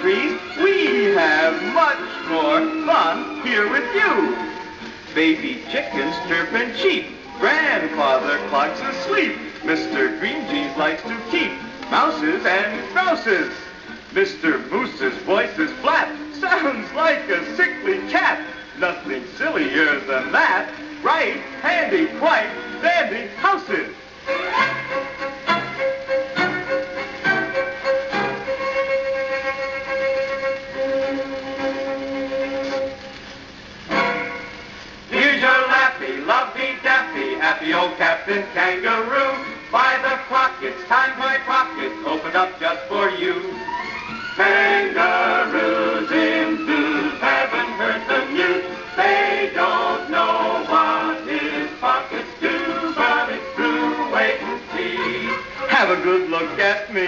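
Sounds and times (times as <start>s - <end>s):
men singing: 0.0s - 4.6s, 5.2s - 13.6s, 14.2s - 23.4s, 35.1s - 43.6s, 44.4s - 57.0s
orchestral theme music: 0.0s - 57.0s.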